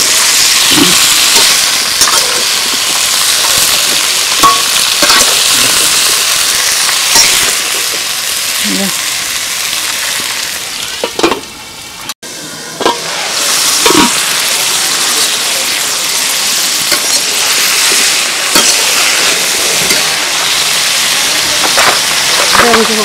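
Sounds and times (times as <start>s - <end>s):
vegetables sizzling in oil: 0.0s - 23.0s
metal spatula scraping a pan: 0.9s - 3.7s.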